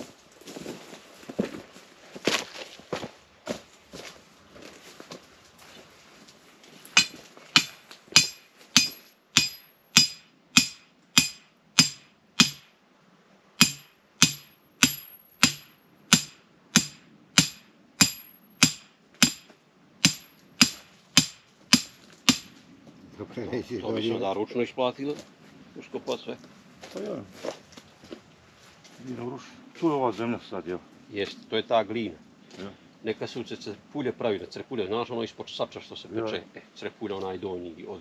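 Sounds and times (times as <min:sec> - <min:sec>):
hammer blows on metal: 0:07.0 - 0:12.7, 0:13.6 - 0:22.6.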